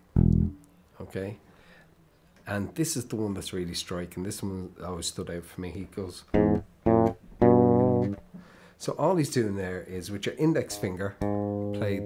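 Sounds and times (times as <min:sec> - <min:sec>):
fretless bass double stops: 0:00.2 - 0:00.6.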